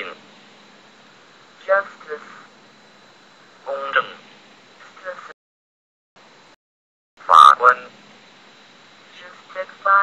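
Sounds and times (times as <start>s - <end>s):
faint steady hiss: 0.0s - 5.3s, 7.2s - 10.0s.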